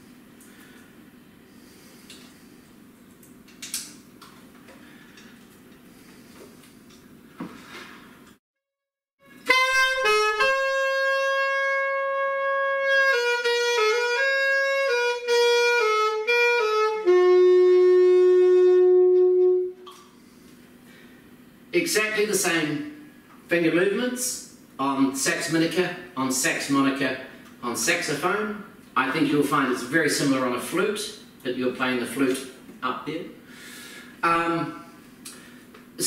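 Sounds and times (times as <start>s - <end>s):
alto saxophone melody: 9.2s - 20.0s.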